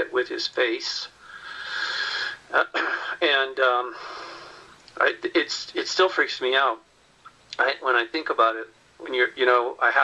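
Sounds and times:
man speaking: 0.0s - 1.2s, 2.5s - 4.0s, 5.0s - 6.8s, 7.5s - 10.0s
man breathing in: 1.2s - 2.5s, 3.9s - 4.8s.

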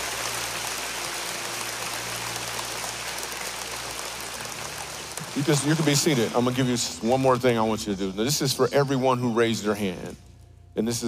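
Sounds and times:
crowd applauding: 0.0s - 7.7s.

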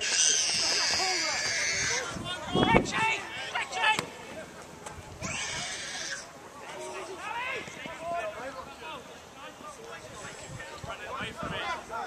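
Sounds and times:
footballers shouting at a distance: 0.0s - 4.6s.

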